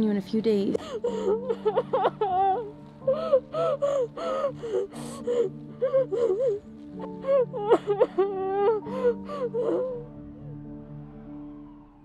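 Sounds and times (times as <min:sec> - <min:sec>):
girl sobbing: 0:00.8 - 0:10.1.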